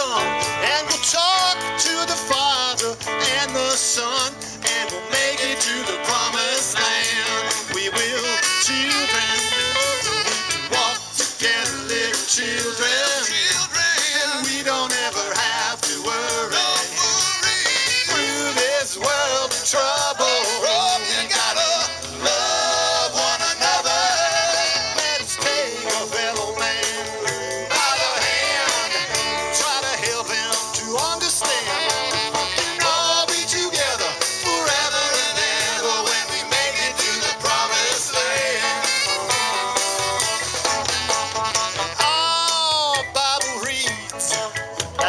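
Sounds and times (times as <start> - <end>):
voices singing together: 0.0 - 40.2
congas: 0.0 - 45.0
drum kit: 0.0 - 45.0
electric bass: 0.0 - 45.0
electric guitars: 0.0 - 45.0
rock band playing: 0.0 - 45.0
saxophone: 7.4 - 11.4, 17.0 - 18.8, 20.2 - 29.7, 31.4 - 34.8, 37.2 - 42.3.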